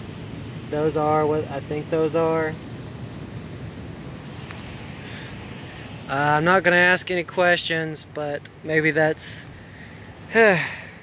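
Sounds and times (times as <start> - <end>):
faint click: 4.4 - 4.6.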